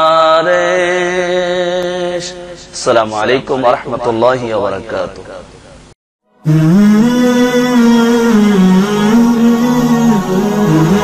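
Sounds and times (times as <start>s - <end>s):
slow melody of long held notes: 6.3s - 11.0s.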